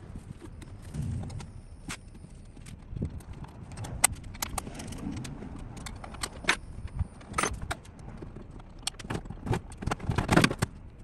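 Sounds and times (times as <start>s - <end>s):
metal tools clinking and rattling: 4.3s - 10.6s.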